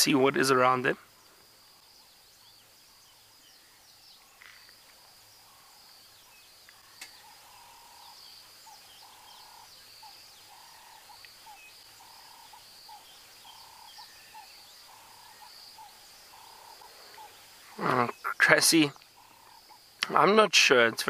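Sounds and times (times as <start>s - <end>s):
faint bird chirps: 0.0s - 20.3s.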